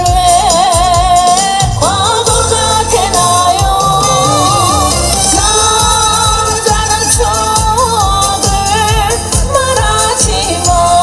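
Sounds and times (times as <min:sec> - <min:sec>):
amplified musical accompaniment: 0:00.0 - 0:11.0
steady drum beat: 0:00.0 - 0:11.0
woman singing with vibrato: 0:00.0 - 0:11.0.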